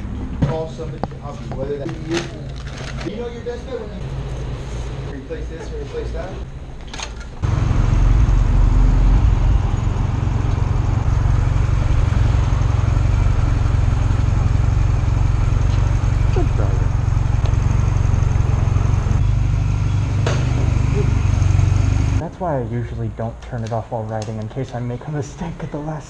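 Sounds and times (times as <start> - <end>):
motorcycle engine rumbling: 7.3 - 22.3.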